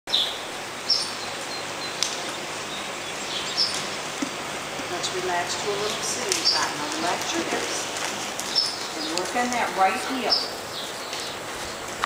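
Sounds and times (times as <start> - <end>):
small birds chirping: 0.1 - 12.0
steady background hiss: 0.1 - 12.0.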